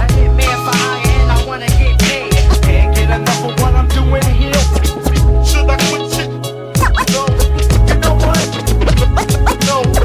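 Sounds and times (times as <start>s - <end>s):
hip hop beat: 0.0s - 10.0s
record scratching: 0.4s - 10.0s.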